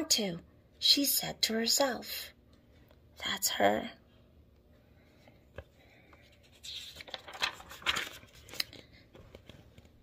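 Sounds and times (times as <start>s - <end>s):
book pages rustling: 5.4s - 10.0s.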